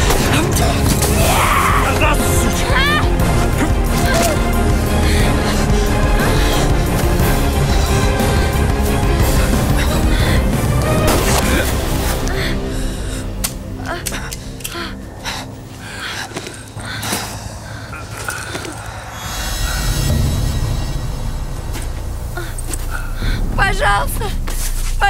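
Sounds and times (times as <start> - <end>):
deep low drone: 0.0 - 25.0
person crying out: 1.2 - 4.4.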